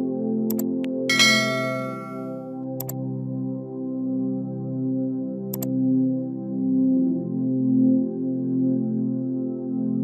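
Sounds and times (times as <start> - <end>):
bright bell chime: 1.1 - 2.4.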